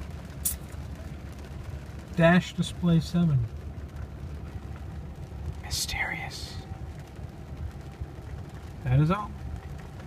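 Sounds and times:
low hum in car cabin: 0.0s - 10.0s.

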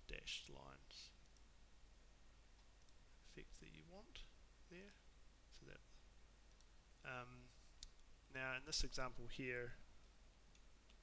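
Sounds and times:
computer mouse click: 6.5s - 6.7s.

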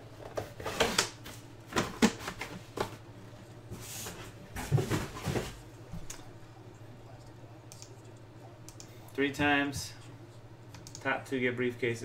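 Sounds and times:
steady low hum: 0.0s - 12.0s
keyboard and mouse clicks: 8.7s - 8.9s, 10.7s - 11.1s.

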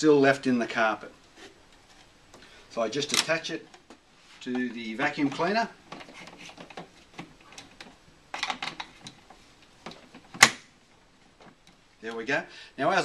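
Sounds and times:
plastic clicking and rattling: 2.3s - 10.6s.

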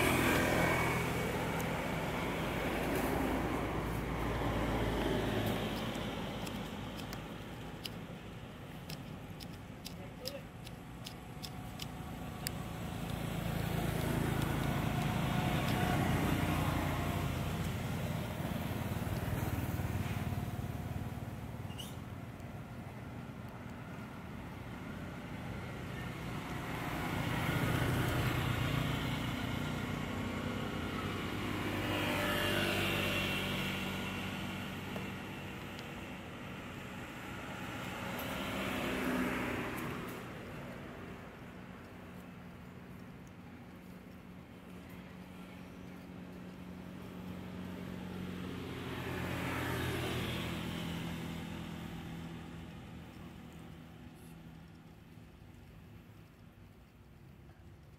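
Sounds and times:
motor vehicles passing: 0.0s - 57.9s.

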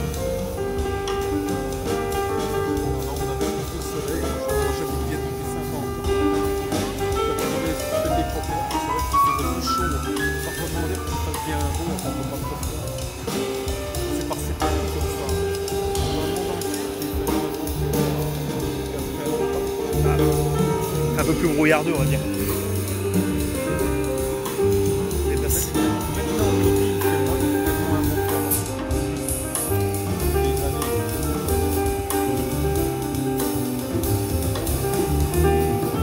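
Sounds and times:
double bass line: 0.0s - 36.0s
drum kit cymbal strokes: 0.0s - 36.0s
piano: 0.0s - 36.0s.

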